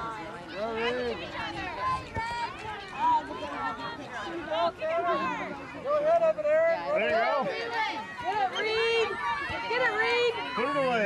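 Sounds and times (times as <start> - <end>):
voices calling and chattering: 0.0 - 11.0.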